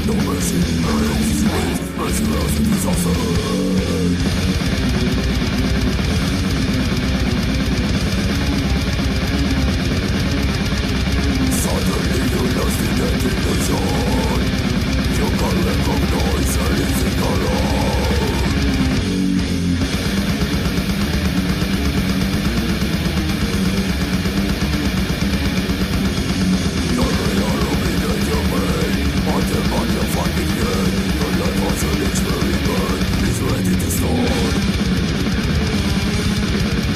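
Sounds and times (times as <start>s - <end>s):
death metal band playing: 0.0s - 36.9s
distorted electric guitars: 0.0s - 36.9s
drums: 0.0s - 36.9s.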